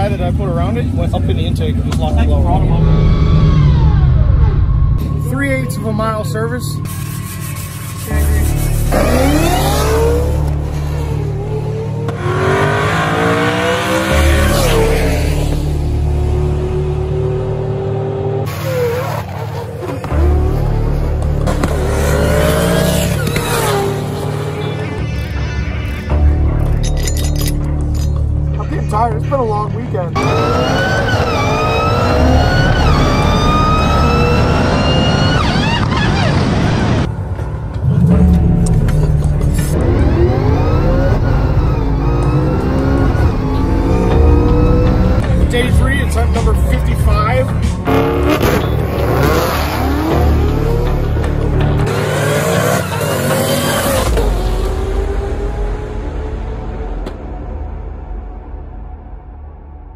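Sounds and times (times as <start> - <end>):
car engine accelerating hard: 8.6 - 25.0, 30.1 - 37.1, 37.8 - 57.3.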